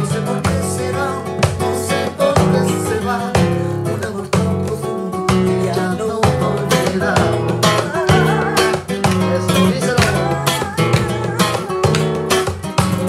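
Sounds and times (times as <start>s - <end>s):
hands clapping: 0.0s - 13.0s
strummed flamenco guitar: 0.0s - 13.0s
woman singing: 5.6s - 12.9s.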